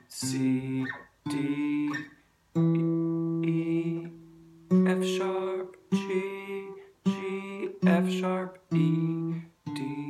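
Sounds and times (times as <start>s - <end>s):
acoustic guitar single notes: 0.0s - 10.0s.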